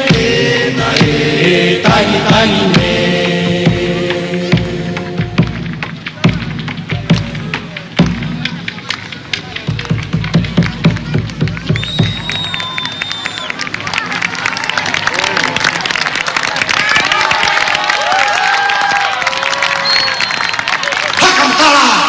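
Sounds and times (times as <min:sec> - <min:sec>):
voices singing: 0:00.0 - 0:05.7
rhythmic drum strikes: 0:00.0 - 0:12.6
crowd cheering: 0:06.1 - 0:22.0
high whistle: 0:11.8 - 0:13.6, 0:19.8 - 0:20.7.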